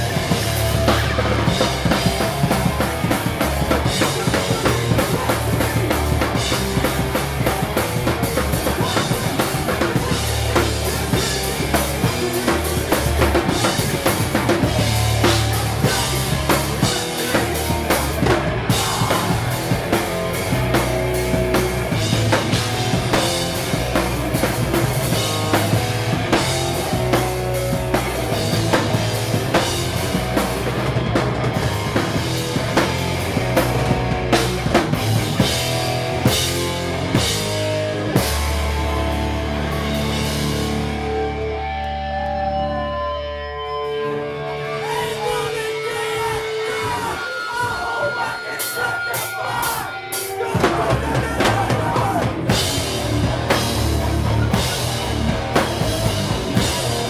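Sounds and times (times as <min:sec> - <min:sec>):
drum kit bass drum and snare: 0:00.0 - 0:41.1, 0:49.6 - 0:57.0
bass guitar: 0:00.0 - 0:57.0
electric guitars: 0:00.0 - 0:57.0.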